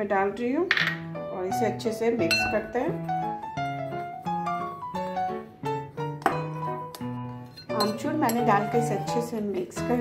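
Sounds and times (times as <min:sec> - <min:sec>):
keyboard music with held notes: 0:01.0 - 0:10.0
spoon clinking against glass bowl: 0:02.2 - 0:02.7, 0:07.4 - 0:08.7.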